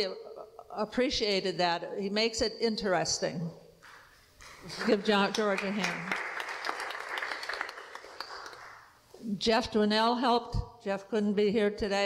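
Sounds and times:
congregation applauding: 0:04.6 - 0:08.9.

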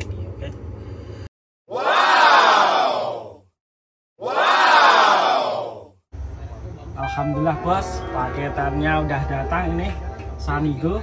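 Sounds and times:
crowd shouting: 0:01.7 - 0:03.4, 0:04.2 - 0:05.9.

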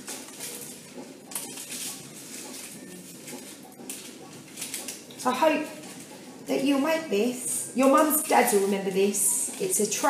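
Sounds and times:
paper rustling: 0:00.0 - 0:05.1
scissors cutting paper: 0:00.0 - 0:06.2.

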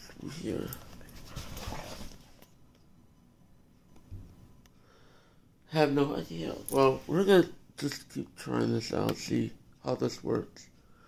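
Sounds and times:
dog rustling on couch: 0:00.3 - 0:02.5.

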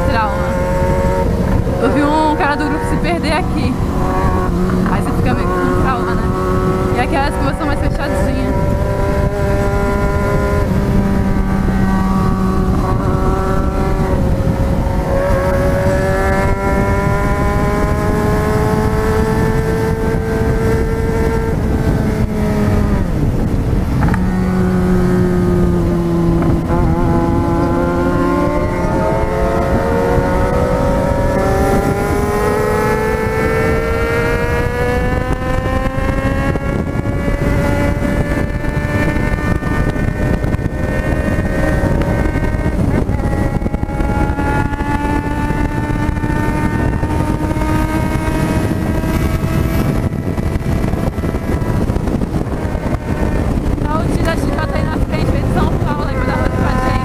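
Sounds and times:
motorcycle engine revving: 0:00.0 - 0:57.0
wind rush: 0:00.0 - 0:57.0.

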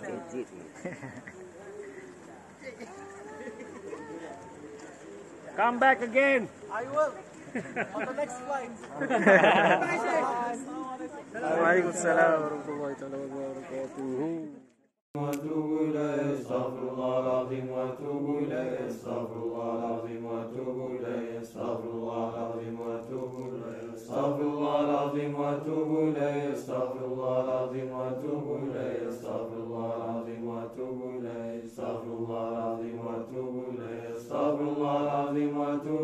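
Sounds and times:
unaccompanied devotional chanting: 0:15.2 - 0:36.0.

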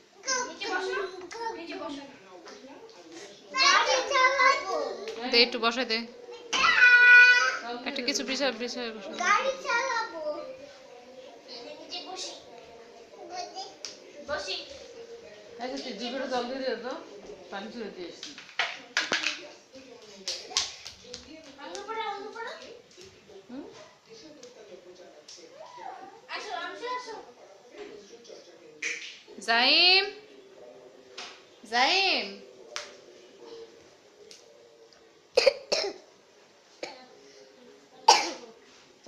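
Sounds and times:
person coughing: 0:38.1 - 0:38.4.

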